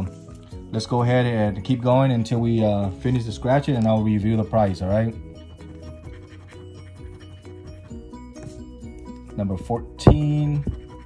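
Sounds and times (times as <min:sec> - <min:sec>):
background music: 0:00.0 - 0:11.0
coin scraping scratch card: 0:05.3 - 0:07.9.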